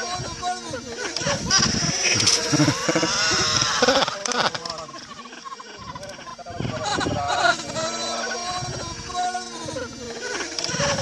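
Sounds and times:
loud wavering bleating: 0:02.2 - 0:05.5.

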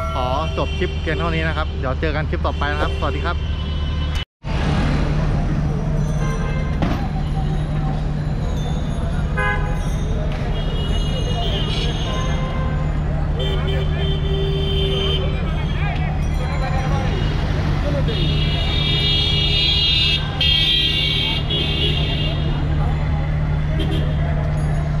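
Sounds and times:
vehicle horns honking: 0:00.0 - 0:04.2, 0:09.3 - 0:09.9, 0:10.5 - 0:15.8, 0:17.0 - 0:22.8, 0:23.7 - 0:24.3.

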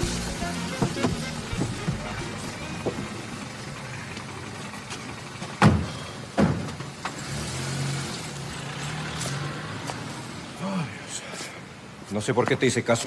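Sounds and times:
car engine running: 0:00.0 - 0:07.4
car doors slamming: 0:00.6 - 0:03.2, 0:05.5 - 0:06.9.

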